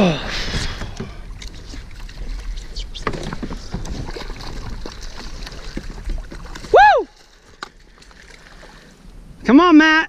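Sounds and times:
water sloshing: 0:00.0 - 0:09.4
fish splashing in water: 0:01.4 - 0:08.9.

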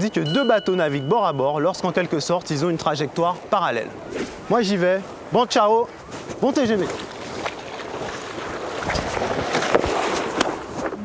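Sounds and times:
small waves at shoreline: 0:00.0 - 0:11.0
wind on microphone: 0:03.4 - 0:11.0.

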